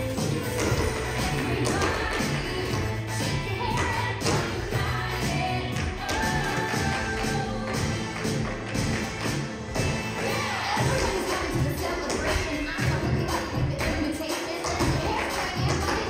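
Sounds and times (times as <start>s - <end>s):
music with vocals: 0.0s - 16.0s
tap shoes on stage floor: 0.2s - 4.7s, 10.8s - 16.0s.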